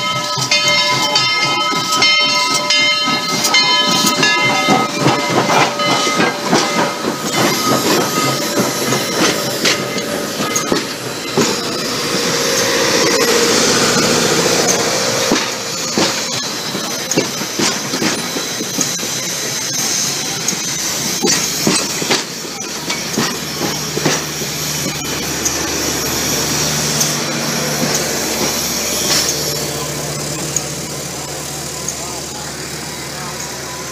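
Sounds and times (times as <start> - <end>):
train wheels clicking over rail joints: 0.0 - 33.9.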